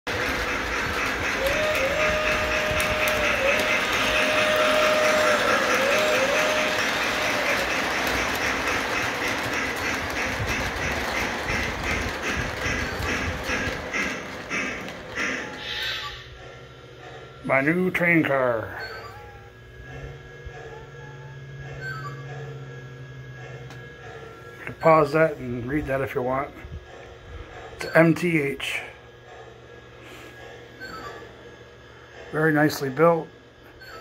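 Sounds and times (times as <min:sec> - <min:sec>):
wheels clicking over rail joints: 0:00.1 - 0:15.6
model train rolling rumble: 0:00.1 - 0:18.7.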